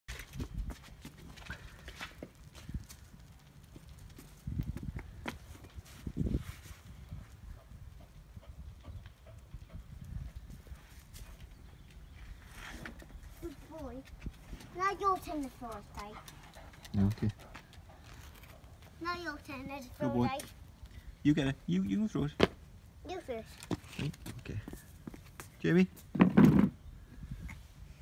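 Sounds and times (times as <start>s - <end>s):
footsteps on tiled patio: 0.1s - 20.9s, 23.5s - 26.7s
person speaking: 19.0s - 20.5s.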